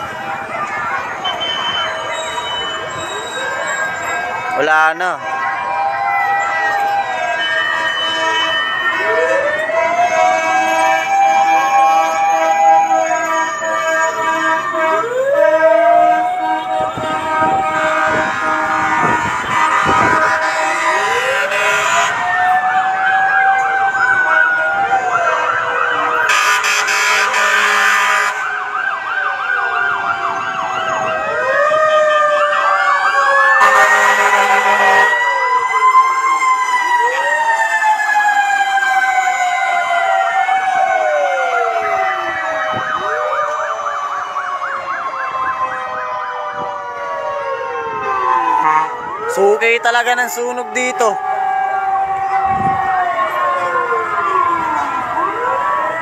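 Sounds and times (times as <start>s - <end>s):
fire truck sirens wailing: 0.0s - 56.0s
short loud horn blasts: 17.0s - 22.1s, 26.3s - 28.4s, 33.6s - 35.1s.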